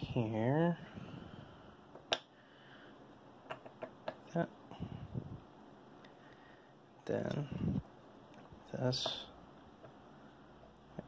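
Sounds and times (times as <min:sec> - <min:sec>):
soft handling noise: 0:07.0 - 0:11.0.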